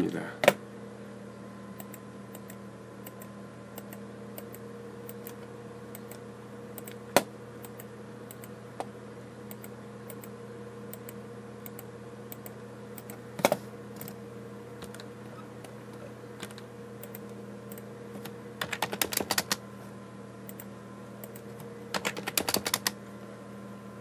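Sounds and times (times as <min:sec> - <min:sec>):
steady low hum: 0:00.0 - 0:24.0.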